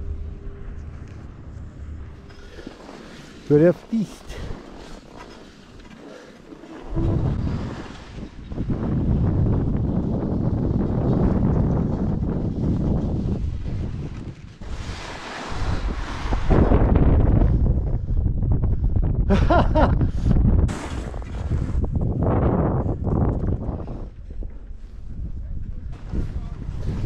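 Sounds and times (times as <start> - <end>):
skis scraping through snow: 2.3 - 8.4, 11.0 - 16.9
wind buffeting microphone: 6.8 - 27.0.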